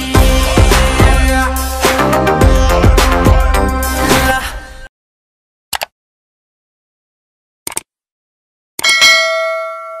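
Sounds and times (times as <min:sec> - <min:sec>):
notification bell ding: 0:08.8 - 0:10.0.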